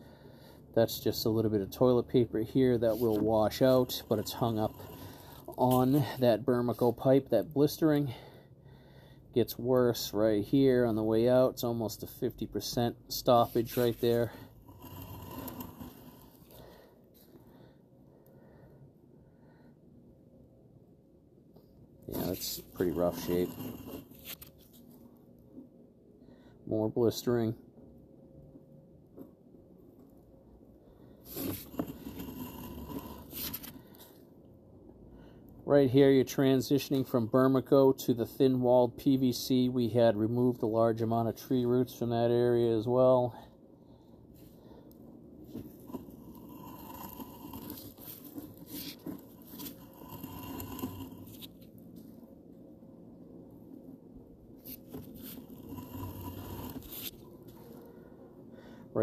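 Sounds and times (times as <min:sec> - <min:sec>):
scraping and rustling handling noise: 0:02.8 - 0:06.1, 0:31.3 - 0:34.1, 0:45.5 - 0:52.2
cable scraping and crunching: 0:13.4 - 0:16.6, 0:22.1 - 0:24.9, 0:31.3 - 0:33.8, 0:45.5 - 0:51.7, 0:54.6 - 0:57.3.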